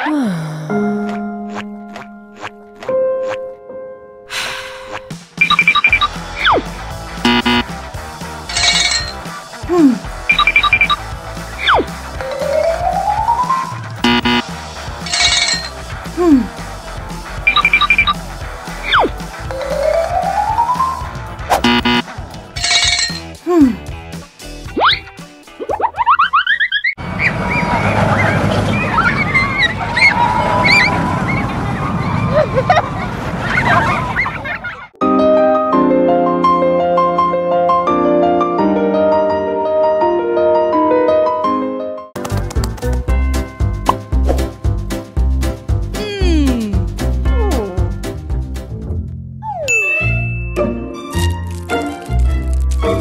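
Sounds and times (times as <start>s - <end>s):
music: 0.4s - 26.0s, 35.0s - 53.0s
short high electronic beeps: 5.4s - 6.2s, 7.3s - 7.6s, 10.3s - 11.0s, 14.0s - 14.4s, 17.5s - 18.2s, 21.6s - 22.0s.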